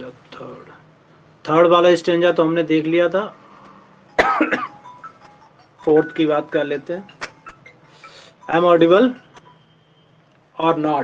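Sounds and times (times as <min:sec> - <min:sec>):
man coughing: 0:04.2 - 0:04.8
speech: 0:10.6 - 0:11.0.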